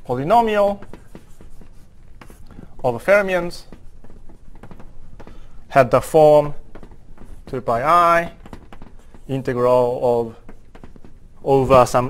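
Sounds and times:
chalk tapping and scratching on board: 0.0s - 12.0s.

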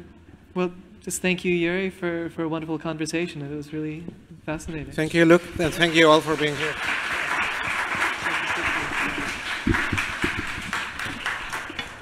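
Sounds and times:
audience applauding: 5.3s - 12.0s.

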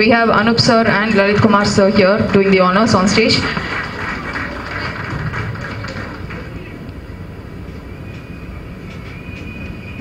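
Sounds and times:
indistinct crowd noise: 0.0s - 10.0s.

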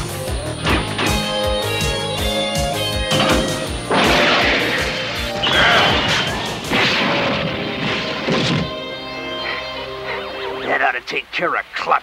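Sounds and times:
action music score: 0.0s - 11.3s
metal vehicles crashing: 0.6s - 1.5s, 3.0s - 8.8s.

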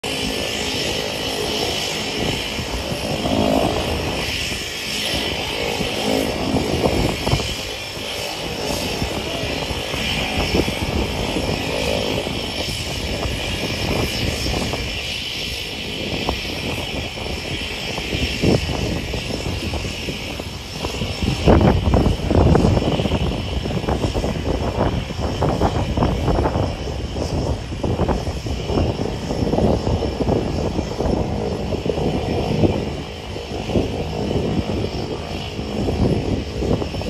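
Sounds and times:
light aircraft engine and propeller: 0.0s - 37.0s.

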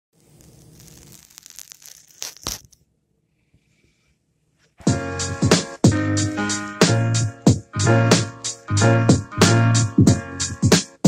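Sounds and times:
scratchy rustling on phone: 0.2s - 2.8s.

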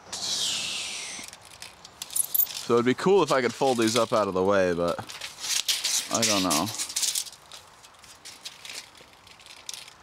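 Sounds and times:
clothing rustle and rattle: 1.5s - 10.0s.

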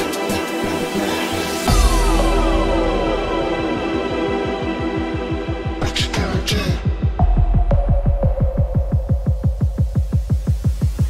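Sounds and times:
deep sub-bass: 1.6s - 11.0s
fast pulsing bass: 1.7s - 11.0s.

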